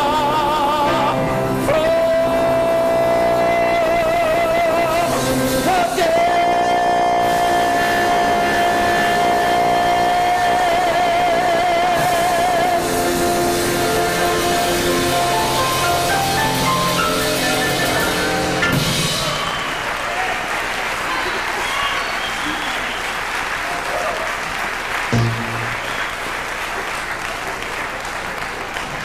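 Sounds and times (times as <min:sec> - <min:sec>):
man singing gospel: 0:00.0 - 0:18.6
live band accompaniment: 0:00.0 - 0:29.0.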